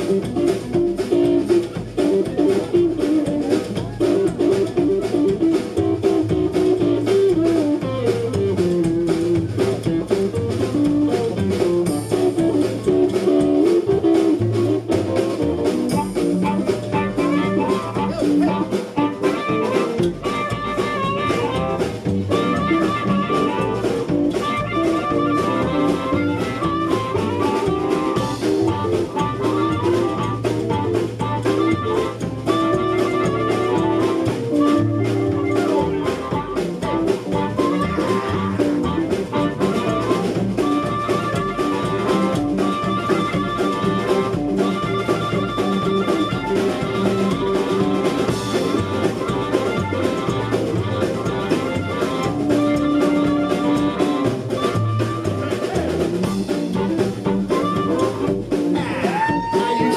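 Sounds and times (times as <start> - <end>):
blues band playing: 0.0 - 59.9
harmonica long notes: 15.6 - 59.9.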